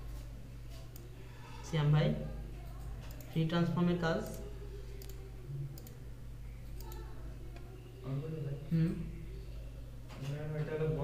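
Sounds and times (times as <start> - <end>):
low steady hum: 0.0 - 11.0
computer mouse clicks: 2.6 - 3.4, 5.0 - 6.0, 6.6 - 7.7.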